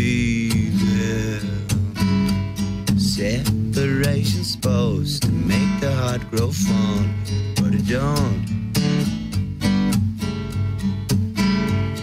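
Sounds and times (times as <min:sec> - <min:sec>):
man singing: 0:00.0 - 0:08.6
acoustic guitar strumming: 0:00.0 - 0:12.0.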